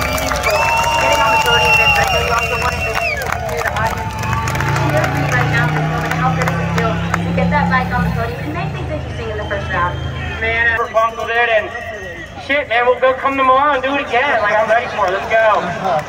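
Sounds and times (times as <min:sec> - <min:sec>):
motorcycle engine running: 0:00.0 - 0:10.6
crowd noise and voices: 0:00.0 - 0:16.0.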